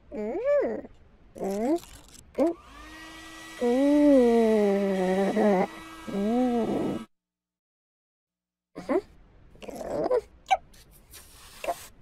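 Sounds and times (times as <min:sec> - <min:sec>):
hair dryer running: 0:02.6 - 0:07.1
loud wavering moan: 0:03.6 - 0:07.1.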